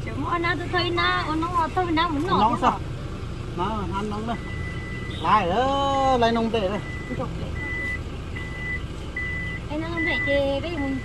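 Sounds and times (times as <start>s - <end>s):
high warning buzzer beeping: 4.3s - 5.4s.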